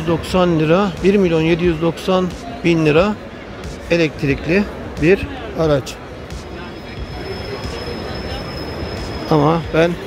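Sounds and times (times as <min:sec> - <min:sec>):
busy pedestrian area noise: 0:00.0 - 0:10.0.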